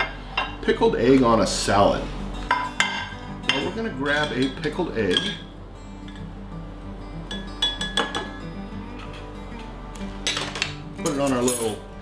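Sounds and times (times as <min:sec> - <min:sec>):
soft background music: 0:00.0 - 0:12.0
metal tongs clinking on glass jar: 0:11.0 - 0:11.8.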